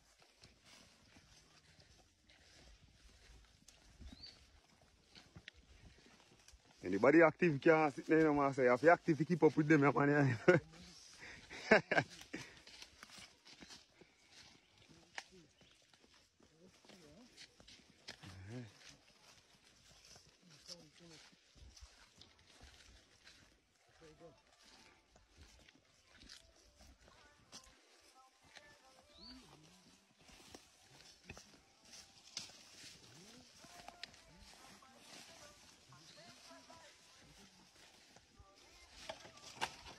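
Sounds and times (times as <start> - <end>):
footsteps in undergrowth: 0.0 - 39.9.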